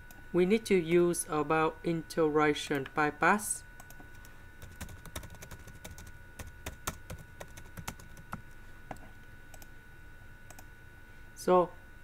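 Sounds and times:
computer keyboard typing: 3.8s - 9.7s.

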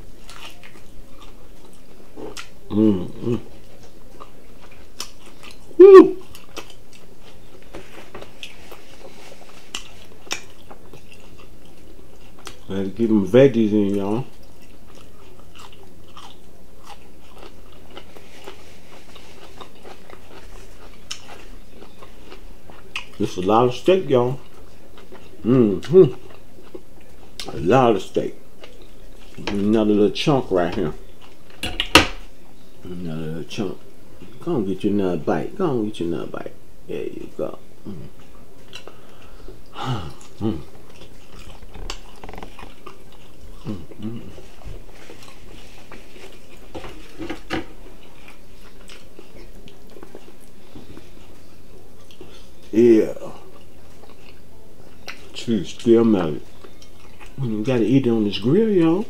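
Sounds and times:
man chewing crunchy food: 0.0s - 34.4s, 37.4s - 59.0s
man humming mm: 2.7s - 3.6s, 5.8s - 6.3s, 39.7s - 40.7s, 43.6s - 44.4s.

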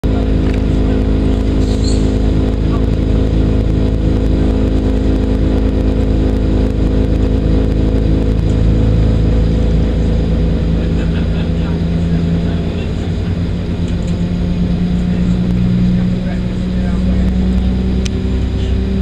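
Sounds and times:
train diesel engine droning: 0.0s - 19.0s.

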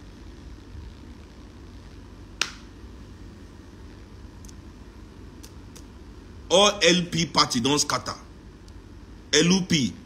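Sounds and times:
sharp click: 2.4s - 2.7s.

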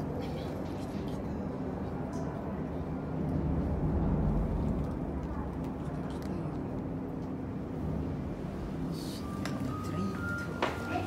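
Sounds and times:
elevator machinery hum: 0.0s - 11.0s.

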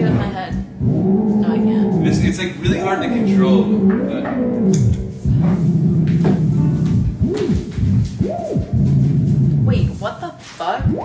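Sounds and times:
theremin wavering tone: 0.0s - 10.1s, 10.7s - 11.0s.

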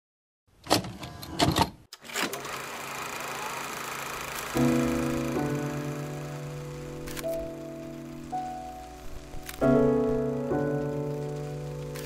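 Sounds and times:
faint steady tones: 4.2s - 12.0s.

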